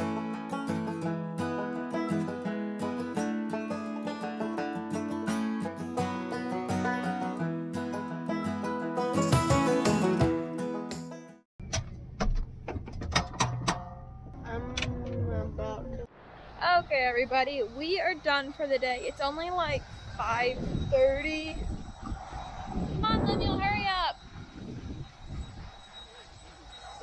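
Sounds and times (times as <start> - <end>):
wind buffeting microphone: 14.2 - 27.0.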